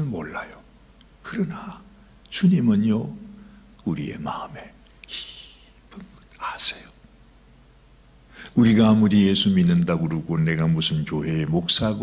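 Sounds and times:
man whispering: 3.8s - 7.0s.

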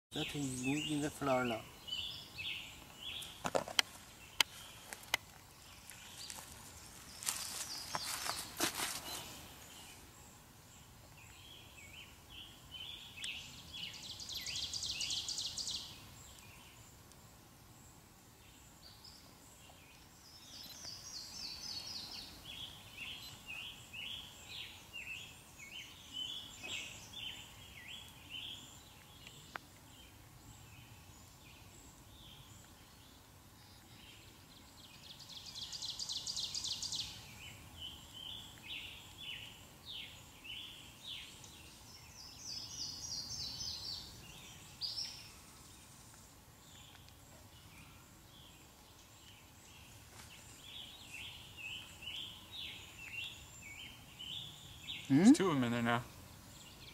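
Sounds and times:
songbirds trilling and chirping: 0.1s - 56.9s.

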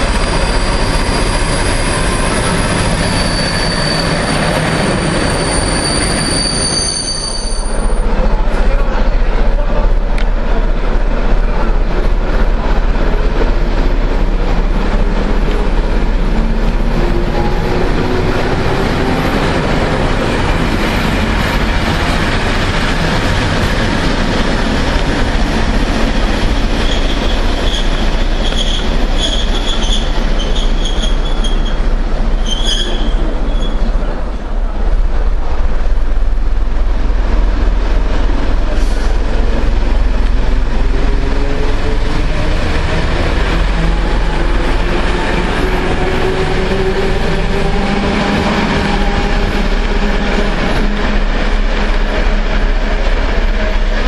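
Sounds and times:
high-pitched wheel squeal: 0.0s - 8.0s, 26.8s - 31.8s, 32.4s - 33.9s
train rumbling: 0.0s - 54.0s.

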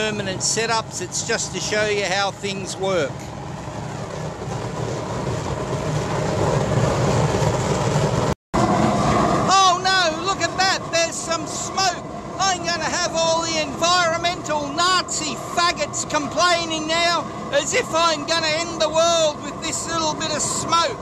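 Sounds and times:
man talking: 0.0s - 3.3s, 9.5s - 21.0s
oil burner flame rushing: 0.0s - 21.0s.

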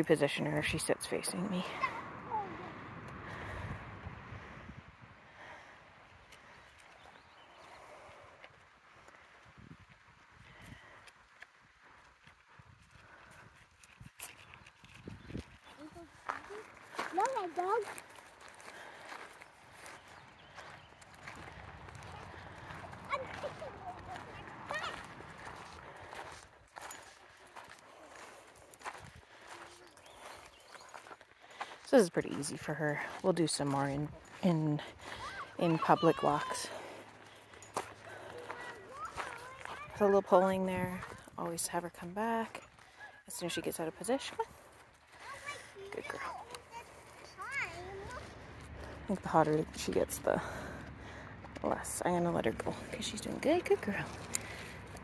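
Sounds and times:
footsteps on gravel: 6.4s - 55.0s.

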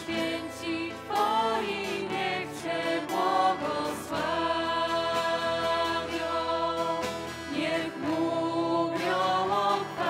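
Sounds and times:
acoustic guitar: 0.0s - 10.0s
group singing a hymn: 0.0s - 10.0s.

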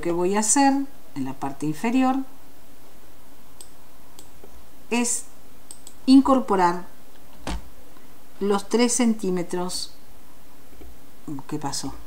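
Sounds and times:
room hiss: 0.0s - 12.0s
computer mouse clicks: 5.7s - 6.0s.

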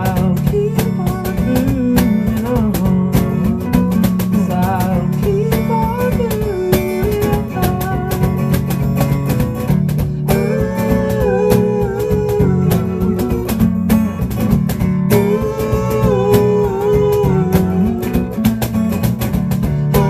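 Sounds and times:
person singing: 0.0s - 8.4s, 10.2s - 14.2s, 15.1s - 18.7s
acoustic guitar strumming: 0.0s - 20.0s.

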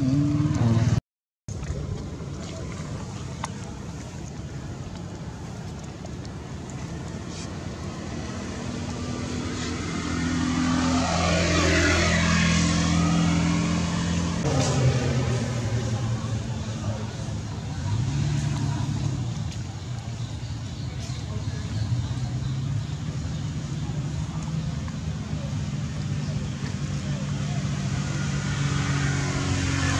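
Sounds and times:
vehicle engine passing by: 0.0s - 1.0s, 1.6s - 29.9s
low steady engine hum: 0.0s - 29.9s.

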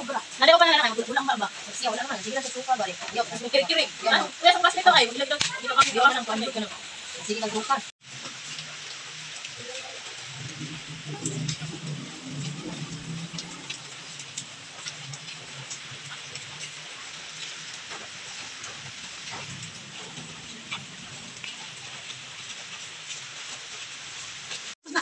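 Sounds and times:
steady hiss: 0.0s - 25.0s.

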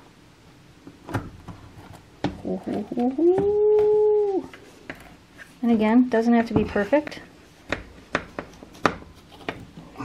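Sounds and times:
knife tapping on phyllo dough: 6.5s - 9.0s.

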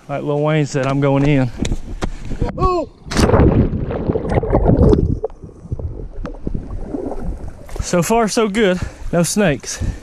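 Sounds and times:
water churning and bubbling: 2.9s - 9.2s
water splashing and sloshing: 3.0s - 9.2s.

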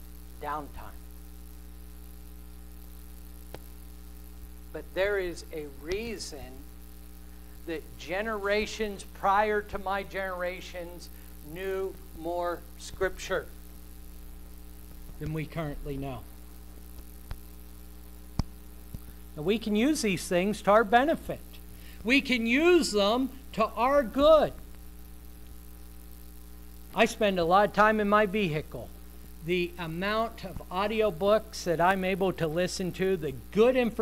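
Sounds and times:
electrical mains hum: 0.0s - 34.0s
man speaking: 0.4s - 1.0s, 4.8s - 6.6s, 7.7s - 13.5s, 15.2s - 16.3s, 19.4s - 24.6s, 26.9s - 34.0s.

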